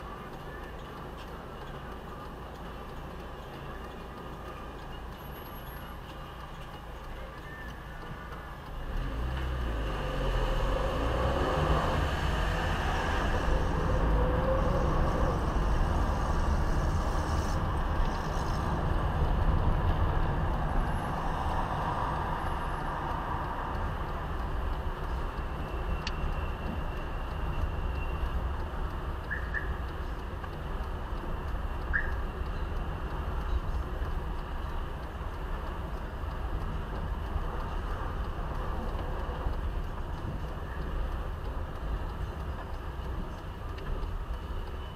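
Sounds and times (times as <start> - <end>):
car engine rumbling: 0.0 - 44.9
road noise: 0.0 - 44.9.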